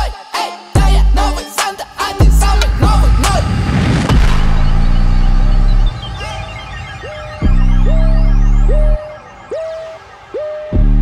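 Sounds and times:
trap beat: 0:00.0 - 0:03.5, 0:04.4 - 0:11.0
noisy swell: 0:01.9 - 0:10.8.

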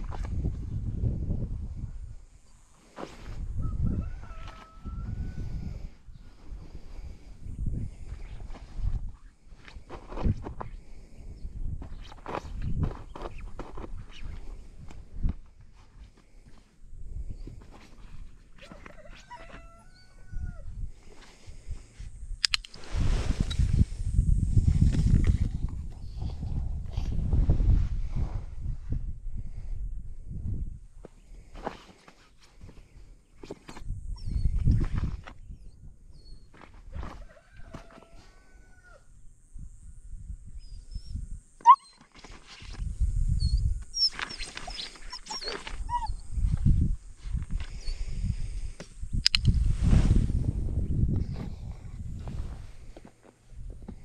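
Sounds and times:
dog-training clicker click: 0:49.2 - 0:49.5.

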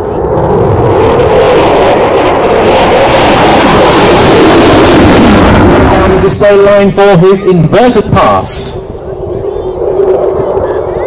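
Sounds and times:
fighter jet engine roaring: 0:00.0 - 0:11.0.

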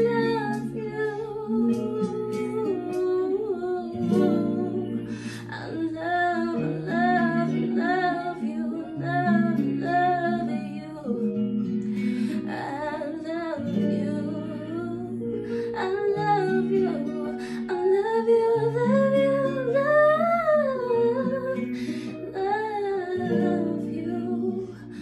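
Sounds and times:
woman singing wordless melody: 0:00.0 - 0:25.0.

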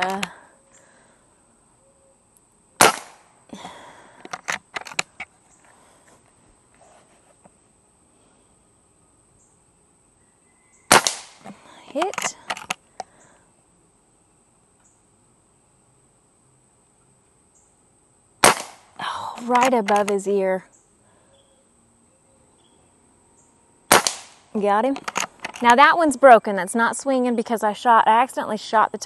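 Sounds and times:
air rifle shots: 0:02.8 - 0:03.3, 0:10.9 - 0:12.8, 0:18.4 - 0:19.0, 0:23.9 - 0:25.6
small clicks and knocks: 0:04.2 - 0:05.7, 0:11.4 - 0:13.1, 0:24.9 - 0:25.8.

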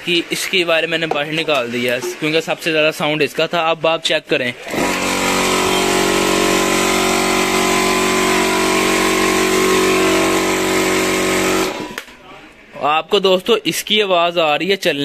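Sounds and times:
air compressors running: 0:00.0 - 0:02.6, 0:04.6 - 0:12.2.

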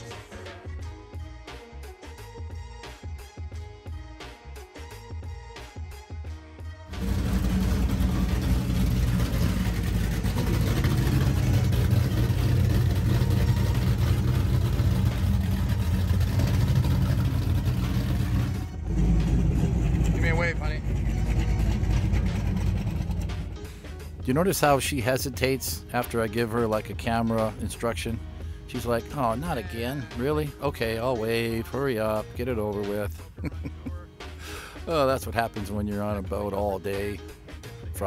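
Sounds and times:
powerboat engines at speed: 0:06.9 - 0:35.2.

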